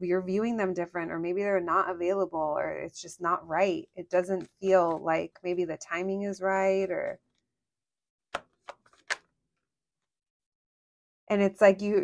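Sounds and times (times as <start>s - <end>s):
cards clicking against deck: 8.4s - 9.3s.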